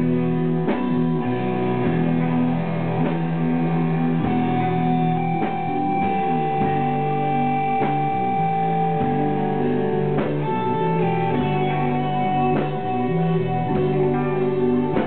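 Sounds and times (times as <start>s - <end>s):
slow electric guitars and bass: 0.0s - 15.0s.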